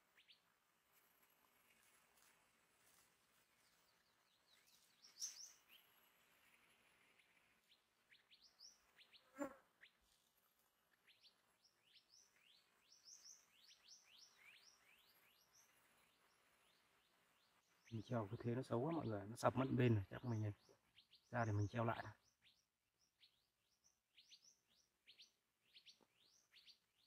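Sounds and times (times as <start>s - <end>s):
birds chirping high and thin: 0.0s - 0.5s, 1.6s - 27.0s.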